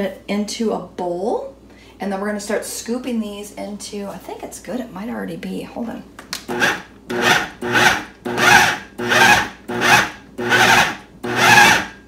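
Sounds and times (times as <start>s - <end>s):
food processor motor whine: 6.5s - 12.0s.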